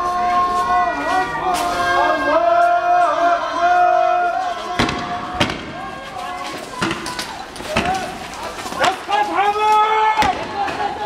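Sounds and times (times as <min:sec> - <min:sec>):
voices chanting: 0:00.0 - 0:11.0
tear gas rounds fired: 0:04.8 - 0:05.9.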